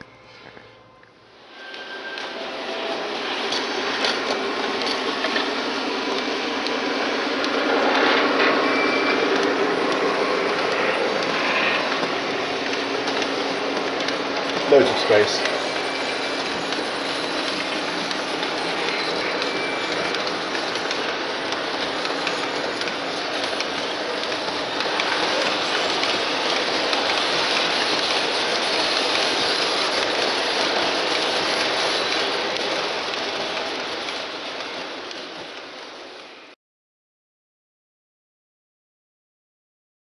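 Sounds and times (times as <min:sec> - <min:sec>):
model train wheels and motor: 0:00.0 - 0:36.6.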